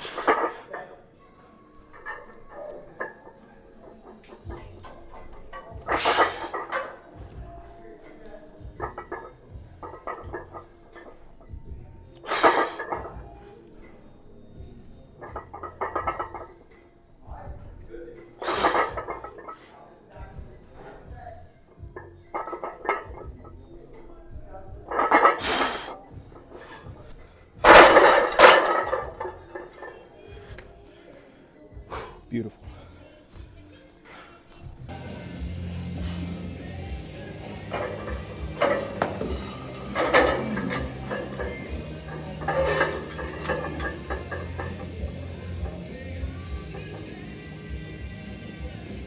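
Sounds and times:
background music with beat: 34.5 - 49.0.

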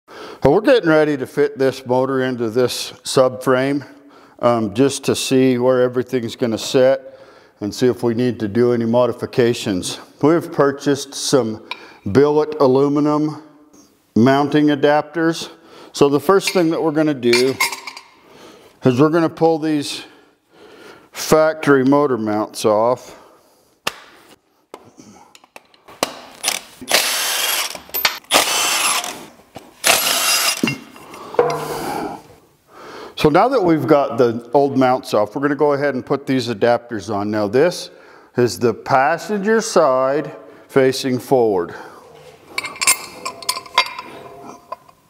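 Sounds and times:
impact wrench bursts: 26.0 - 32.0
light metallic clinks: 42.6 - 45.0.

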